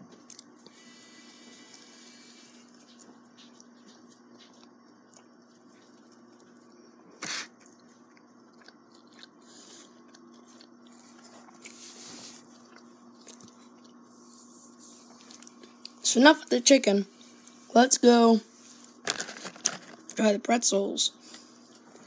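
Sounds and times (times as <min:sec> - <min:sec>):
chewing and crunching food: 0:00.0 - 0:16.1, 0:17.1 - 0:17.7, 0:21.2 - 0:22.0
faint steady hum: 0:00.0 - 0:22.0.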